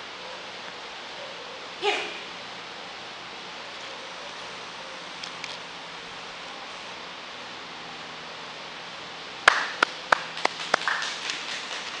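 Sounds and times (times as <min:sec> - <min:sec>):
hands clapping: 0:09.4 - 0:12.0.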